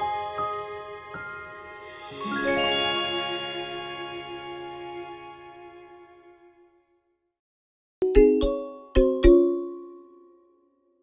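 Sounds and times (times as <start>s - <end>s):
mallet percussion jingle: 2.2s - 4.2s, 8.0s - 10.5s.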